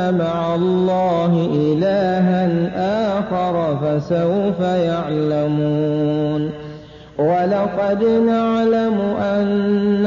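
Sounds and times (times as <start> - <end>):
man reciting in melodic chant: 0.0 - 10.0.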